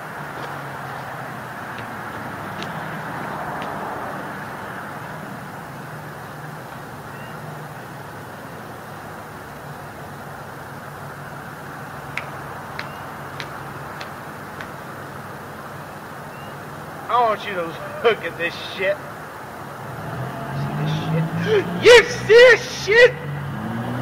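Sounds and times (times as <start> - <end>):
city street traffic: 0.0 - 24.0.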